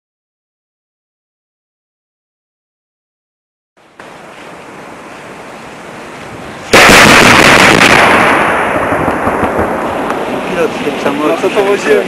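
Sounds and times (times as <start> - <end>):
outdoor background noise: 3.8 - 12.0
loud explosion blast: 6.7 - 10.8.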